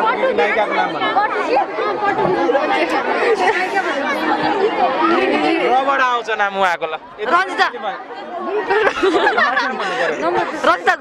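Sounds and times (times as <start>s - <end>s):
young women chattering: 0.0s - 6.0s, 7.1s - 11.0s.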